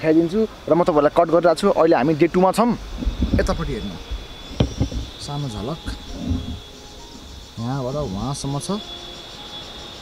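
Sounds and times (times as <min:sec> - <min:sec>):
high-pitched insect drone: 0:00.0 - 0:10.0
men's voices: 0:05.2 - 0:06.6.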